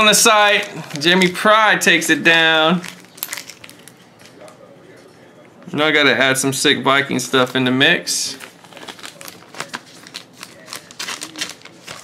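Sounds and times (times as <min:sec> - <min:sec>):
packaging crackling and rustling: 0:02.8 - 0:04.6, 0:08.3 - 0:12.0.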